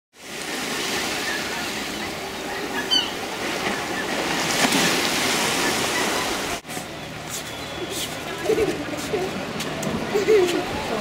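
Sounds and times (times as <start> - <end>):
sea waves washing: 0.2 - 11.0
distant crowd chatter: 0.5 - 11.0
gull call: 1.2 - 3.2.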